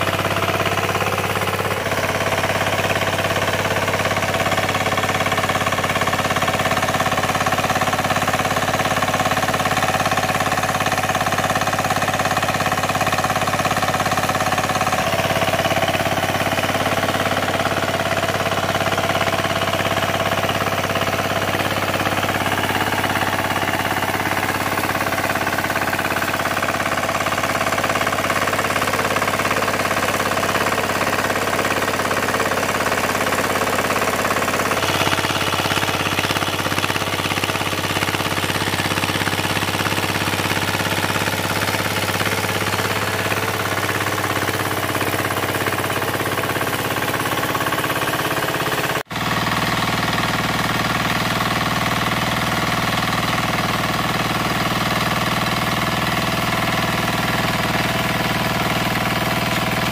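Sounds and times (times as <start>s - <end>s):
power tiller engine running: 0.0s - 59.9s.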